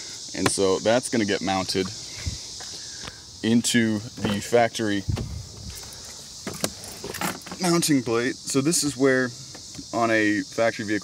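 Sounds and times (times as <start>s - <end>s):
insects chirring: 0.0s - 11.0s
car door thump: 5.1s - 5.4s.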